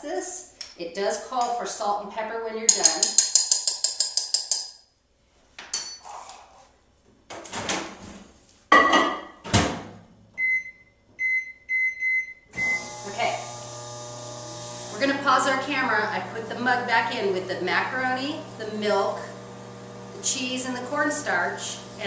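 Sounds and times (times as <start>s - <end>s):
microwave humming: 12.5s - 22.0s.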